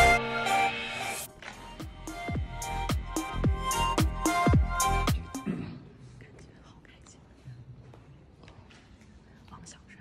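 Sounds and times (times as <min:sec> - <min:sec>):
woman whispering: 0:06.1 - 0:07.7, 0:09.2 - 0:10.0.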